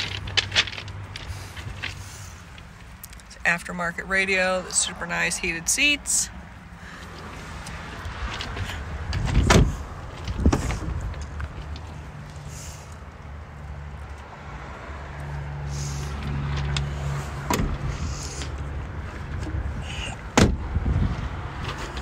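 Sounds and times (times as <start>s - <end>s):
car doors knocking: 20.3s - 20.6s.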